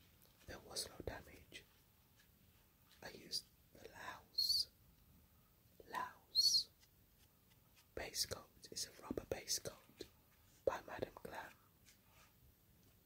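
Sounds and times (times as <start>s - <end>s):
person whispering: 0.4s - 1.7s, 2.9s - 4.7s, 5.8s - 6.7s, 8.0s - 11.6s.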